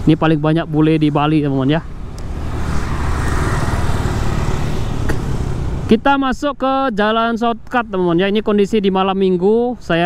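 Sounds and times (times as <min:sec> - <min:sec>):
motorbikes passing: 0:00.0 - 0:08.8
road noise: 0:00.0 - 0:10.0.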